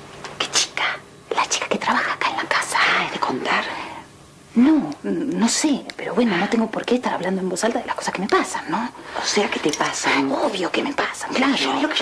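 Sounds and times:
woman whispering: 0.4s - 3.8s.

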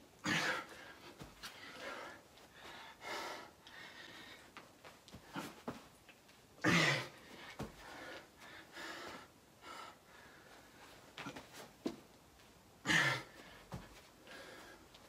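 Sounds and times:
man breathing hard: 0.2s - 4.6s, 6.7s - 11.0s, 12.8s - 15.0s.

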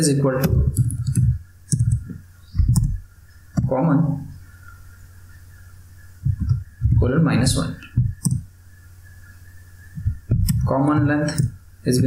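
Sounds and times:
computer keyboard typing: 0.4s - 3.0s.

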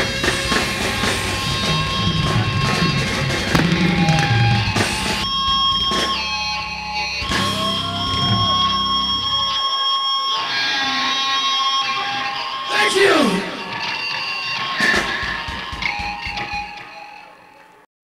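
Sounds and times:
bass and drums: 0.0s - 9.5s
electric guitar bending notes: 0.0s - 12.6s.

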